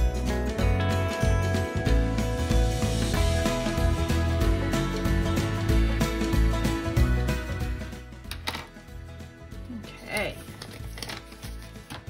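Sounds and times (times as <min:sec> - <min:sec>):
light guitar music: 0:00.0 - 0:09.7
paper rustling: 0:10.1 - 0:12.0
pen clicks: 0:10.5 - 0:12.0.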